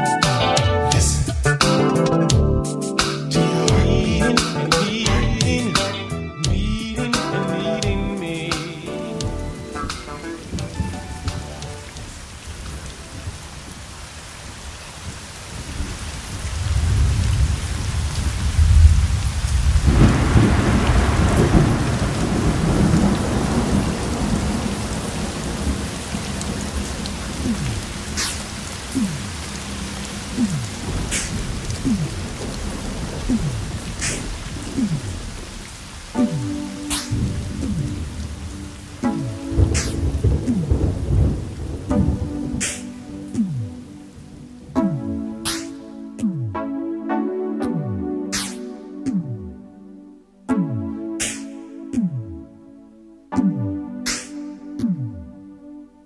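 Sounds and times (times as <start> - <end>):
music with sustained notes: 0.0 - 13.4, 36.1 - 56.0
steady rain: 3.0 - 5.8, 6.8 - 50.3
thunder rolling: 15.5 - 43.0
sharp thunder cracks: 16.6 - 28.6, 30.7 - 35.6, 36.5 - 43.0.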